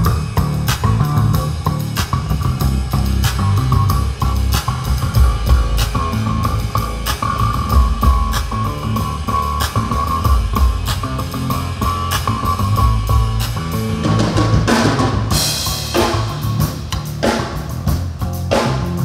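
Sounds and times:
bass guitar: 0:00.0 - 0:19.0
drum kit steady beat: 0:00.0 - 0:19.0
electric guitars: 0:00.0 - 0:19.0.

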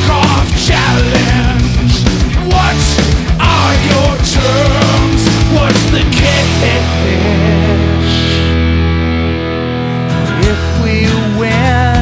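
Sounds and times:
distorted electric guitar chords: 0:00.0 - 0:12.0
wavering voice singing: 0:02.4 - 0:08.6.

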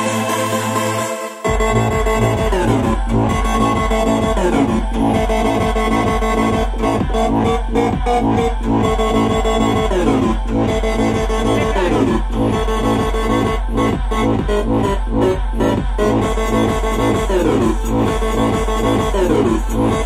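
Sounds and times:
held synth chords: 0:00.0 - 0:20.0
kick and bass beat: 0:01.4 - 0:20.0.

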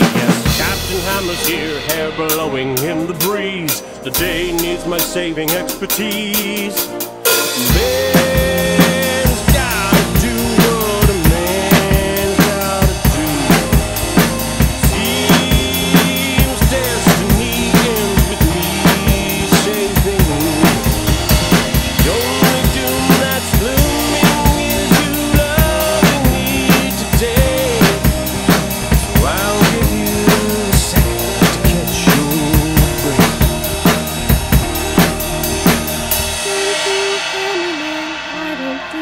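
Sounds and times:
acoustic drum kit beat: 0:00.0 - 0:39.0
instrumental backing track: 0:00.0 - 0:39.0.

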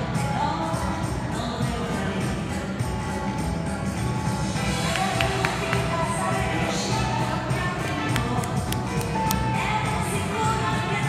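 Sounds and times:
up-tempo ballroom music: 0:00.0 - 0:11.0.

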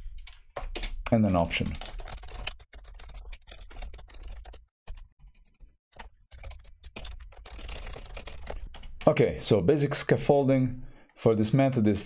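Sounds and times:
typing on computer keyboard: 0:00.0 - 0:09.3.

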